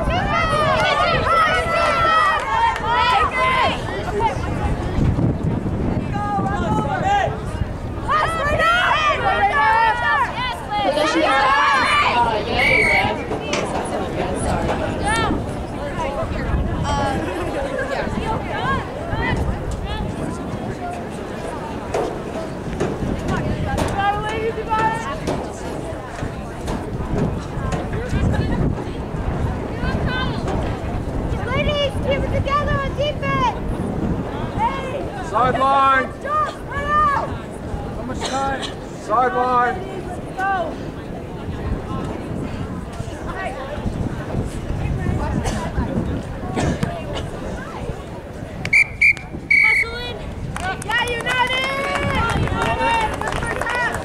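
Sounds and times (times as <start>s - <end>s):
people shouting: 0.0s - 4.0s, 8.1s - 13.2s
wind rumble on microphone: 0.0s - 54.0s
referee's whistle blasts: 48.7s - 50.0s.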